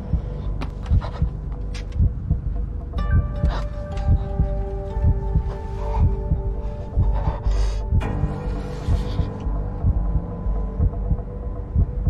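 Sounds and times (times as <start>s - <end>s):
heartbeat thumps: 0.0s - 12.0s
tense music drone: 0.0s - 12.0s.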